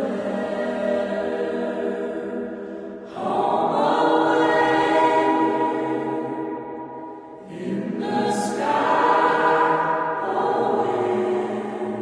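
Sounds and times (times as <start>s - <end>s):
choir singing held notes: 0.0s - 12.0s.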